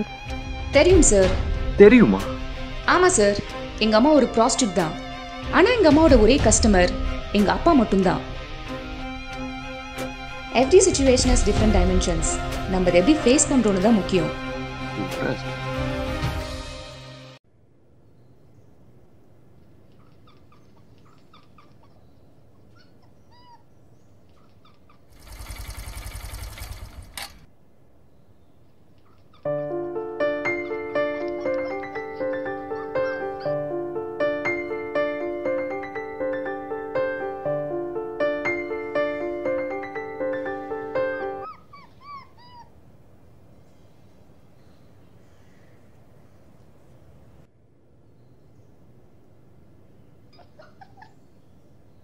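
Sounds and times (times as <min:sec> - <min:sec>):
piano music: 0:00.0 - 0:17.4, 0:29.4 - 0:41.6
small birds chirping: 0:18.0 - 0:25.6, 0:27.9 - 0:33.7, 0:38.5 - 0:47.2, 0:47.9 - 0:52.0
puppy whimpering: 0:22.7 - 0:25.1, 0:30.6 - 0:33.6, 0:41.4 - 0:42.8, 0:50.3 - 0:51.2
loud fast pulsing rustle: 0:25.1 - 0:27.5.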